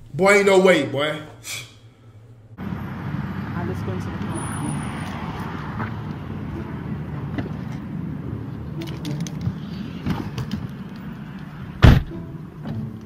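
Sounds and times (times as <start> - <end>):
low traffic rumble: 0.0 - 13.0.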